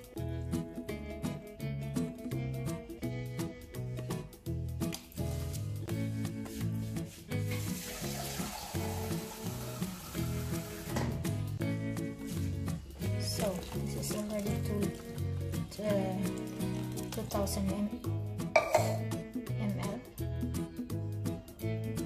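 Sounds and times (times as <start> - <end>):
background music with bass line: 0.0 - 22.0
water pouring into steel bowl: 7.5 - 11.0.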